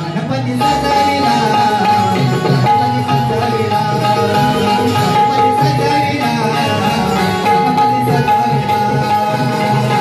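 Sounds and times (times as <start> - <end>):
hand drum playing: 0.0 - 10.0
held melody line: 0.0 - 10.0.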